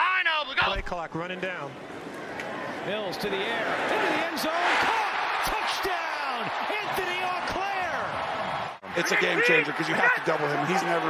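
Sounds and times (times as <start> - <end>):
stadium crowd noise: 0.0 - 11.0
excited voices yelling: 3.7 - 11.0.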